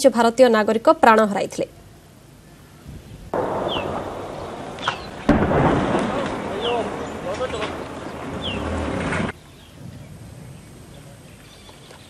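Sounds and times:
explosions with rolling rumble: 0:03.3 - 0:10.6.

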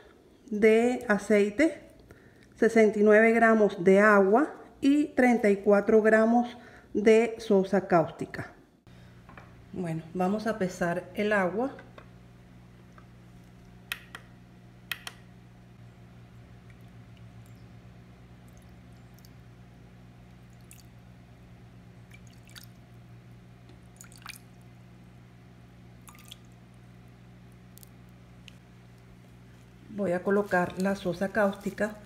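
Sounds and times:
low hum: 0:08.8 - 0:32.0
water trickling and dripping: 0:16.4 - 0:17.7, 0:18.4 - 0:19.5, 0:20.2 - 0:21.0, 0:22.0 - 0:23.0, 0:23.8 - 0:24.7, 0:26.0 - 0:26.6.

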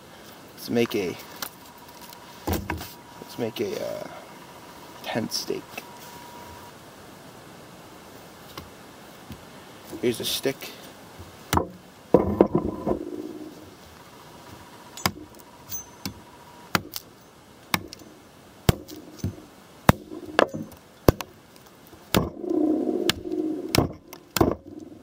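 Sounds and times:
knife chopping wood: 0:17.7 - 0:18.0, 0:18.7 - 0:21.3, 0:22.1 - 0:22.4.

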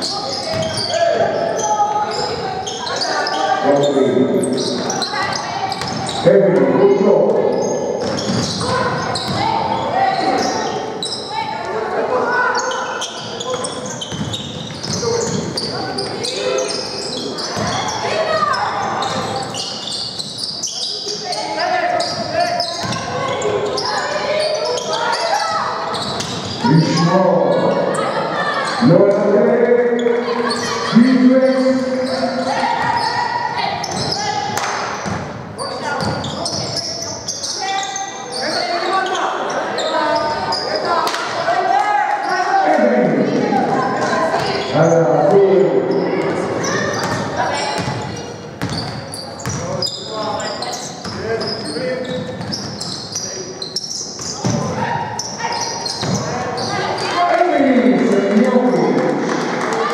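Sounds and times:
basketball bouncing on court: 0:00.4 - 0:00.9, 0:04.8 - 0:06.2, 0:07.6 - 0:09.8, 0:13.5 - 0:15.7, 0:17.4 - 0:18.0, 0:22.0 - 0:23.4, 0:33.8 - 0:35.4, 0:36.0 - 0:36.8, 0:46.2 - 0:49.8, 0:51.0 - 0:52.9, 0:54.2 - 0:54.8, 0:55.9 - 0:56.7.

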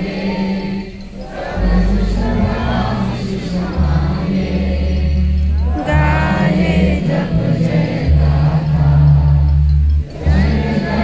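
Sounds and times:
group singing in chorus: 0:00.0 - 0:11.0
low musical accompaniment: 0:00.0 - 0:11.0.

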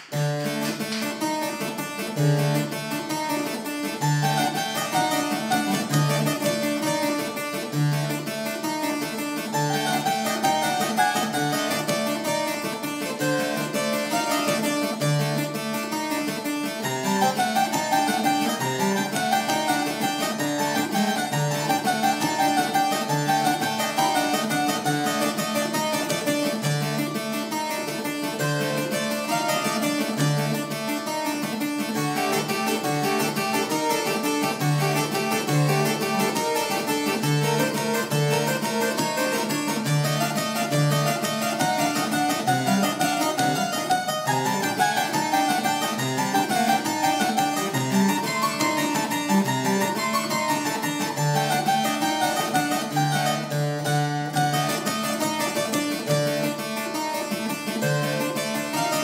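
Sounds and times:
solo harpsichord dance piece: 0:00.0 - 0:59.0.

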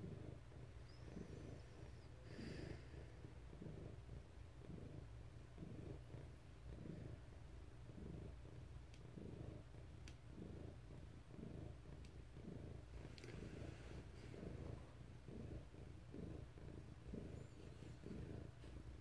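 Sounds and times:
cat purring: 0:00.0 - 0:19.0
faint ticks: 0:13.1 - 0:13.4.

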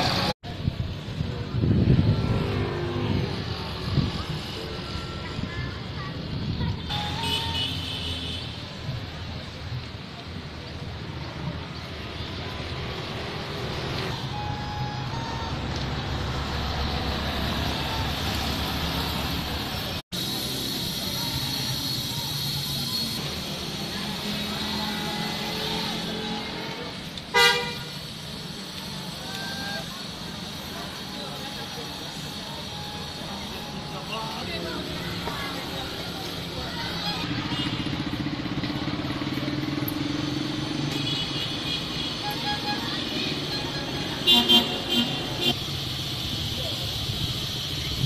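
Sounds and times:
faint voices: 0:00.0 - 0:48.0
street traffic: 0:00.0 - 0:48.0
vehicle horn toot: 0:06.9 - 0:08.6, 0:27.3 - 0:28.0, 0:41.0 - 0:45.6.

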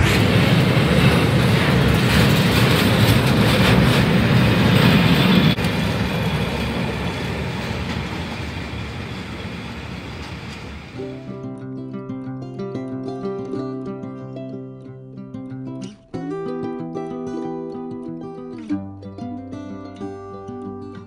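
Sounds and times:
train wheels rumbling on track: 0:00.0 - 0:11.1.

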